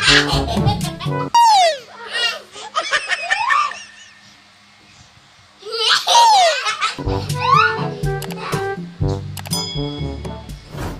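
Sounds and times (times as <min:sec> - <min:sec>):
young child squealing with laughter: 0:00.0 - 0:00.4, 0:01.4 - 0:04.4, 0:05.6 - 0:07.8
music with a steady beat: 0:07.0 - 0:10.7.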